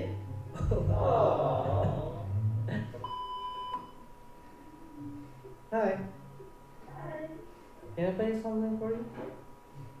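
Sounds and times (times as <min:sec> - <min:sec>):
electronic beep: 0:03.0 - 0:04.0.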